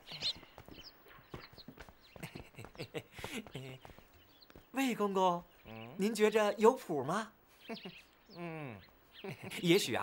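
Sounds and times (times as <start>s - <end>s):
horse hooves clip-clopping: 0.0s - 4.8s.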